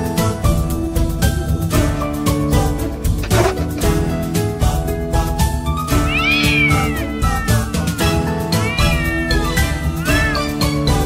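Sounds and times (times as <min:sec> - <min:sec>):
cat meowing: 0:05.9 - 0:11.0.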